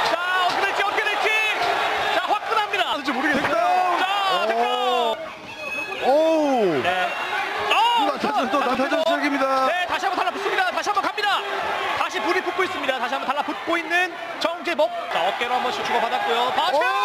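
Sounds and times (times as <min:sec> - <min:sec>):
men shouting excitedly: 0:00.0 - 0:05.2, 0:06.0 - 0:17.0.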